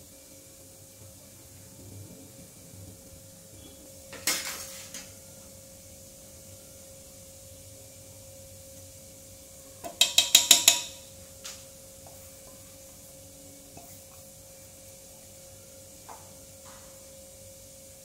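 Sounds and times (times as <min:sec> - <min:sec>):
steel cup clanking against bowl: 0:09.8 - 0:11.1.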